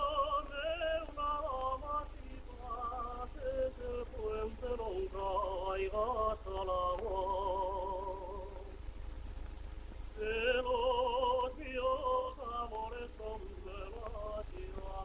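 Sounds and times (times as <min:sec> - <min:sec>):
person singing with vibrato: 0:00.0 - 0:08.8, 0:10.2 - 0:15.0
low hum: 0:00.0 - 0:15.0.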